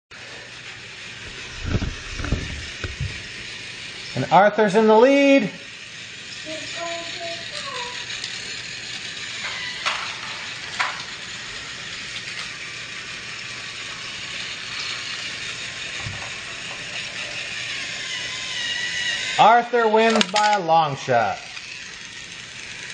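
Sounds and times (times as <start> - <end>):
toy train motors whirring: 0.1 - 22.9.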